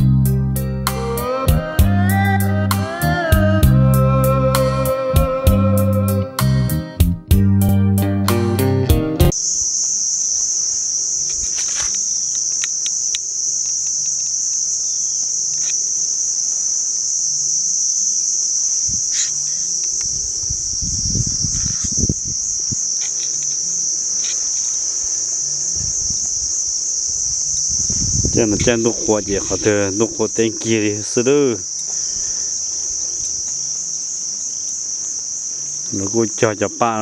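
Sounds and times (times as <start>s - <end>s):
insect chorus drone: 0.0s - 7.4s, 9.3s - 37.0s
guitar music: 0.0s - 9.3s.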